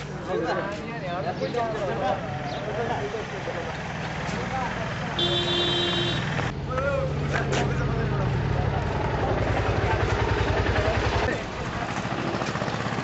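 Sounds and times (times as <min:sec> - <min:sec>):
voices: 0:00.0 - 0:13.0
vehicle engine throbbing: 0:02.6 - 0:13.0.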